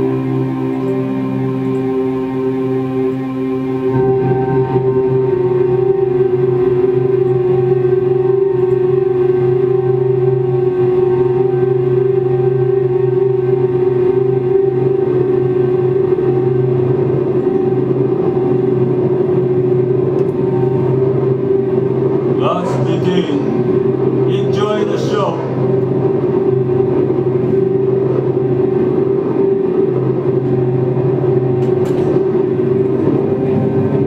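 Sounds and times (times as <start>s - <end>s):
ambient drone with held tones: 0.0s - 34.0s.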